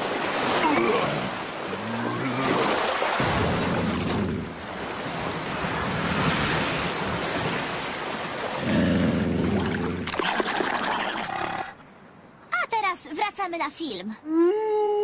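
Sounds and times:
cartoon water wave rushing: 0:09.6 - 0:11.7.

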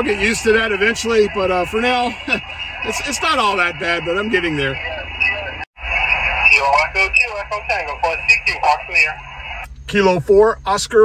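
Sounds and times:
voice over radio speaker: 0:00.0 - 0:09.3.

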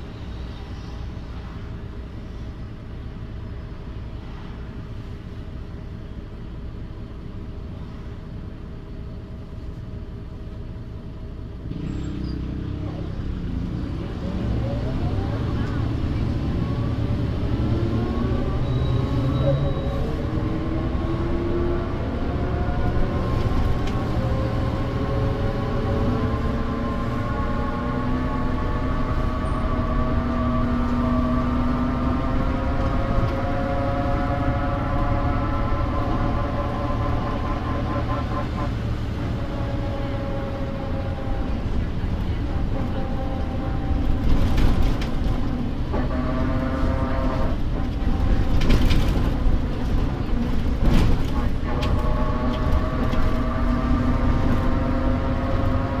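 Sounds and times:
low diesel engine rumble: 0:00.0 - 0:56.0
whining drivetrain tone: 0:11.6 - 0:56.0.

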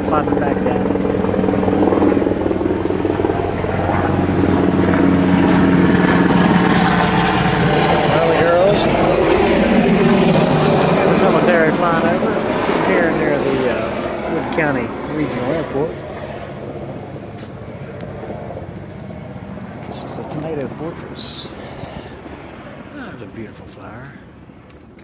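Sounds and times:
aircraft engine drone overhead: 0:00.0 - 0:25.0.

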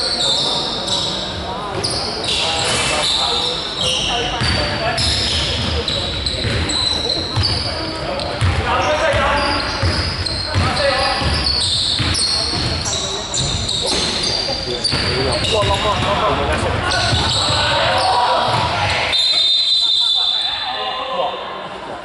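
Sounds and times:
sneaker squeaks: 0:00.0 - 0:21.0.

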